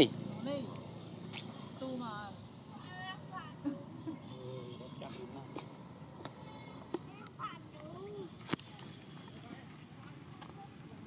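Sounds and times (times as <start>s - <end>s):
distant indistinct voices: 0.0s - 11.0s.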